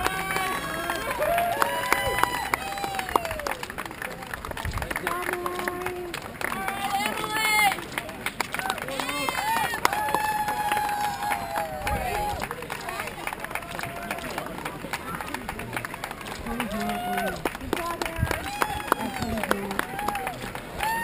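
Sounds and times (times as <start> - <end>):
spectators shouting and cheering: 0.0 - 21.0.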